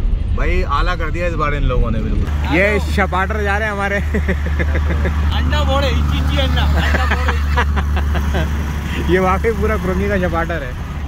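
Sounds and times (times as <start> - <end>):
car interior rumble: 0.0 - 11.0
voices talking: 1.7 - 11.0.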